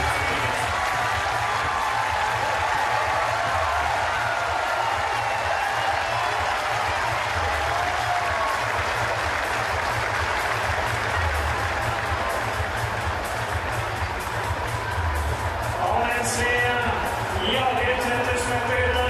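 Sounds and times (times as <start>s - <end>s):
music over public address: 0.0s - 19.0s
stadium crowd applauding: 0.0s - 19.0s.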